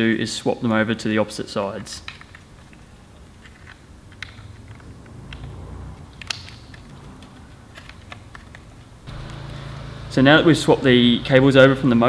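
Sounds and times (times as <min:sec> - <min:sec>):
plastic connector clicks: 0:06.1 - 0:08.7.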